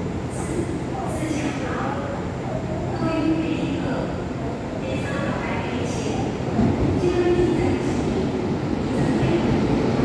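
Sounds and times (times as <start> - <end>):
train humming: 0.0 - 10.0.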